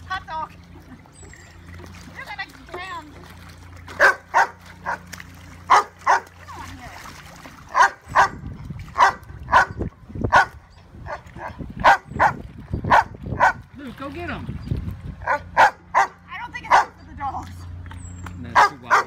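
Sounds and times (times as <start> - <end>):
dog barking: 4.0 - 5.0, 5.7 - 6.3, 7.7 - 8.4, 9.0 - 13.6, 15.2 - 17.0, 18.5 - 19.0.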